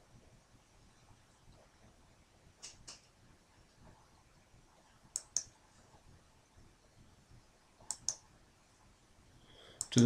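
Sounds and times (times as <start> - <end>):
computer mouse clicks: 5.1 - 5.6, 7.8 - 8.2.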